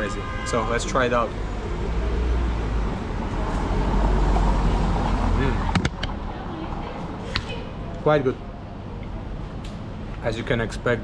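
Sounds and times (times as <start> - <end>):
car passing by: 1.5 - 5.7.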